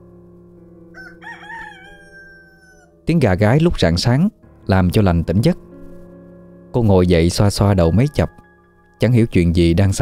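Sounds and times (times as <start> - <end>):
soft background music: 0.0 - 10.0
rooster crowing: 0.9 - 3.0.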